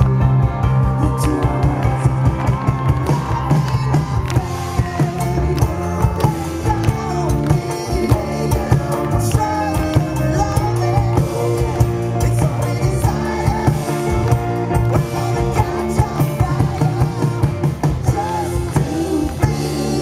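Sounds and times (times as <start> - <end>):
drum kit beating: 0.0 - 20.0
rock band playing: 0.0 - 20.0
man singing: 0.8 - 2.4, 3.4 - 20.0.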